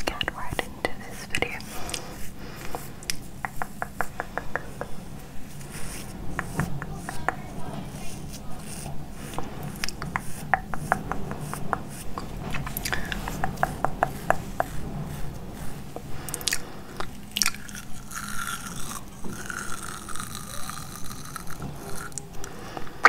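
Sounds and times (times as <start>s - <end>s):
brush crackling at microphone: 0.9s - 22.4s
wet mouth clicks: 2.6s - 5.1s, 16.3s - 22.9s.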